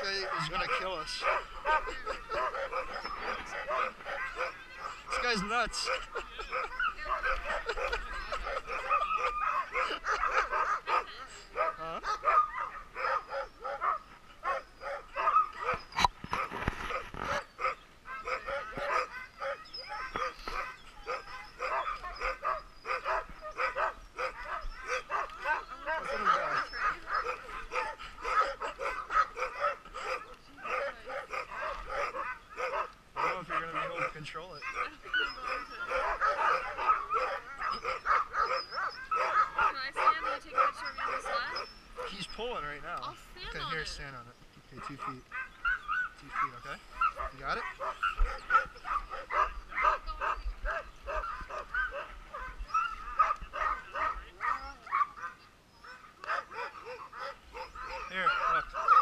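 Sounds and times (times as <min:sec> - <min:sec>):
dogs barking and yipping: 0:00.0 - 0:59.0.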